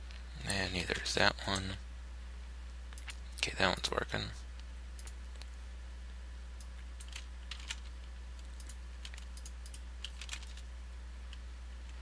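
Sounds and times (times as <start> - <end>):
low electrical hum: 0.0 - 12.0
keyboard and mouse clicks: 2.9 - 3.2, 5.0 - 5.5, 6.6 - 10.7.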